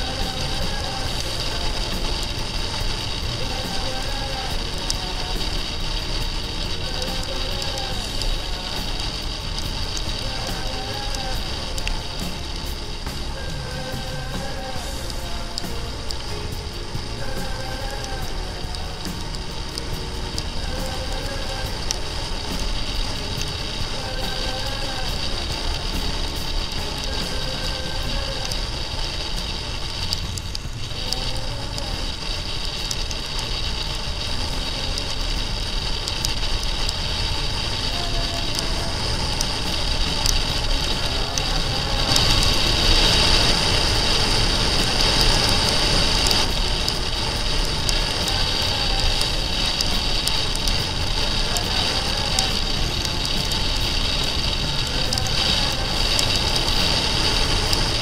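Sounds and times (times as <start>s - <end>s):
motorcycle on wet road: 0.0s - 58.0s
music playing: 0.0s - 58.0s
wind noise: 0.0s - 58.0s.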